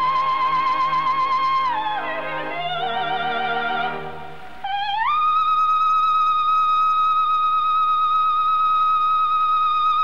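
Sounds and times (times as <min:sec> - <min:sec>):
operatic soprano singing high note: 0:00.0 - 0:10.0.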